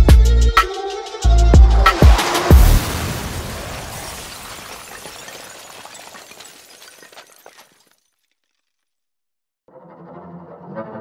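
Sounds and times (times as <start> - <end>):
crash explosion effect: 1.6 - 7.2.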